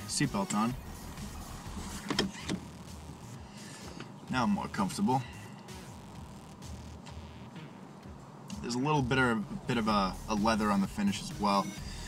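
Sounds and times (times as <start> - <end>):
seatbelt retracting: 1.8 - 2.7.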